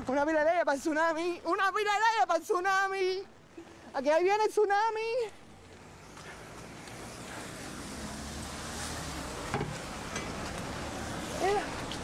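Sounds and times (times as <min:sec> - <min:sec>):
rain hissing: 0:05.8 - 0:12.0.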